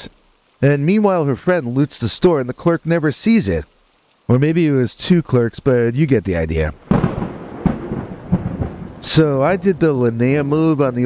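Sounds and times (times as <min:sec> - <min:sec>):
rain falling: 0:00.0 - 0:11.0
thunder rumbling: 0:06.8 - 0:11.0.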